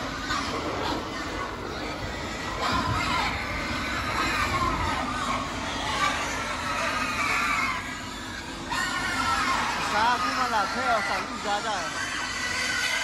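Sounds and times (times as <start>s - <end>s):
pigs squealing and grunting: 0.0s - 13.0s.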